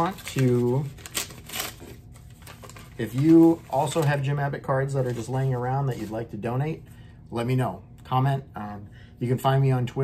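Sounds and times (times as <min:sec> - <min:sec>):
paper crackles: 0:00.0 - 0:06.3
paper envelope rustling: 0:00.0 - 0:06.3.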